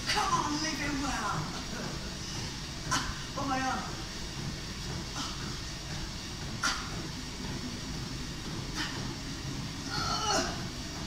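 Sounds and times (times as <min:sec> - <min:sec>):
woman's strained cry: 0:09.9 - 0:10.6.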